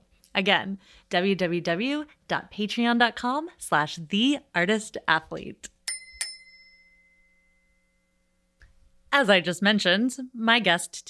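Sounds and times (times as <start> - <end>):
bell-like chime ringing: 5.9 - 8.5.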